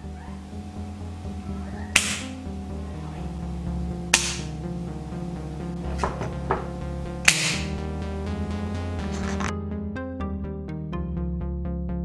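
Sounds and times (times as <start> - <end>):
background music: 0.0 - 12.0
spring-loaded trigger snapping: 7.3 - 7.7.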